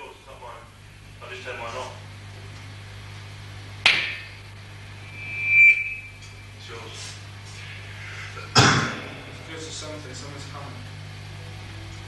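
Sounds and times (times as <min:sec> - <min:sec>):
amplifier electrical hum: 0:00.0 - 0:12.0
high feedback tone: 0:04.8 - 0:06.6, 0:08.8 - 0:11.9
sharp knock: 0:08.6 - 0:10.2.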